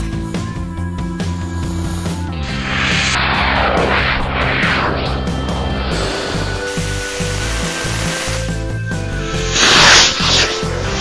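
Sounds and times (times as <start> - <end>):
rocket motor hissing: 1.2 - 11.0
background music: 5.0 - 11.0.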